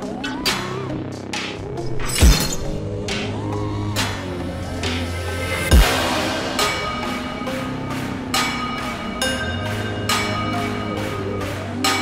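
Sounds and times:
electronic music: 0.0 - 12.0
deep bass hit: 4.7 - 9.0.

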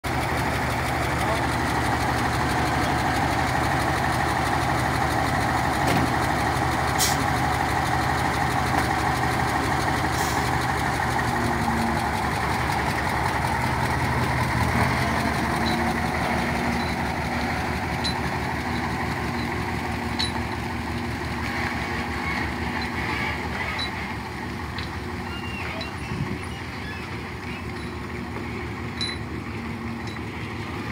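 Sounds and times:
truck diesel engine running: 0.0 - 30.9.

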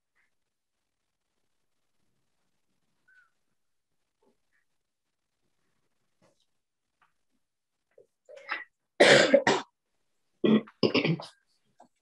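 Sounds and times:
person coughing: 9.0 - 9.7, 10.4 - 11.4.

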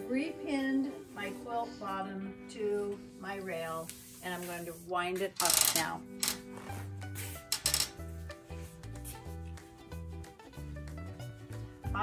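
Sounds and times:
background music with bass line: 3.3 - 12.0.

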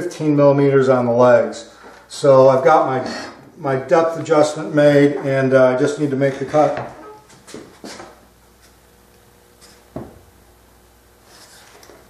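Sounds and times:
soft knocks of a power tool: 9.9 - 10.3.

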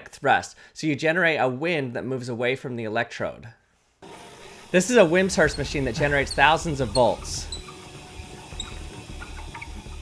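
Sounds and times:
machine whirring: 4.0 - 10.0.

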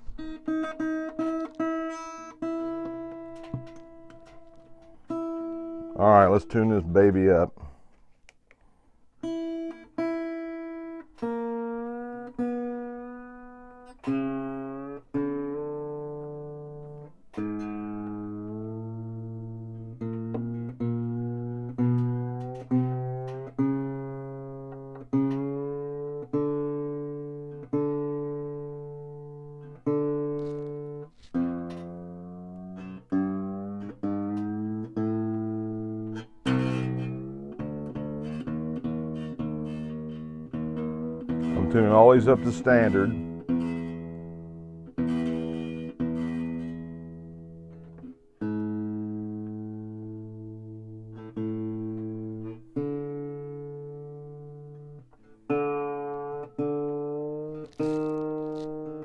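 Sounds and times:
acoustic guitar strings plucked: 0.0 - 8.4, 9.2 - 59.0.

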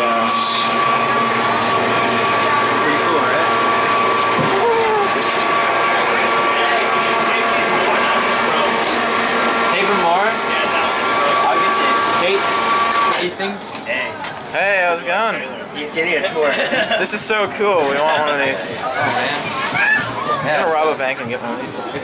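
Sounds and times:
electric lift motor whining: 0.0 - 13.4.

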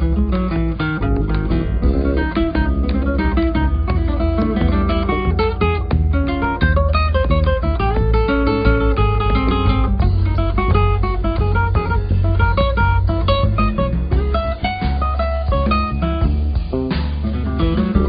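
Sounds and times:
acoustic guitar music: 0.0 - 18.0
steady low bass: 0.0 - 18.0.

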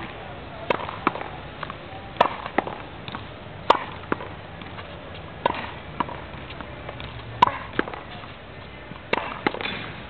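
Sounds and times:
tennis racket hitting ball: 0.0 - 10.0.

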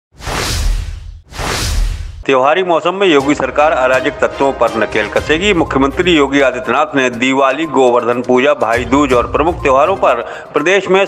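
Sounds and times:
whoosh sound effects: 0.1 - 2.2.

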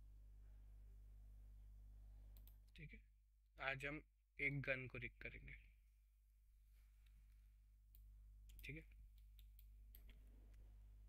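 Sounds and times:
computer mouse clicks: 2.3 - 2.7.

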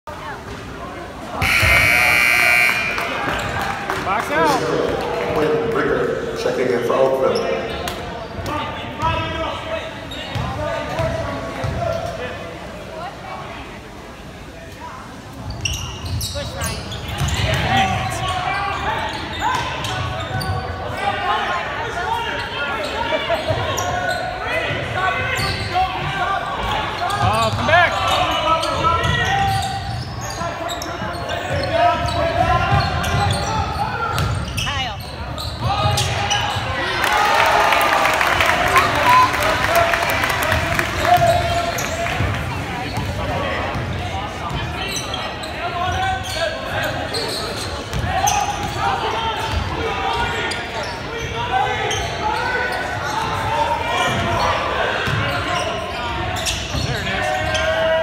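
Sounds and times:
voices echoing in hall: 0.1 - 58.0.

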